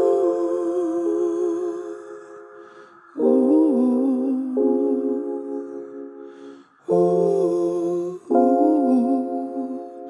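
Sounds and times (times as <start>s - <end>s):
digital piano chords: 0.0s - 10.0s
man singing wordlessly: 6.9s - 10.0s.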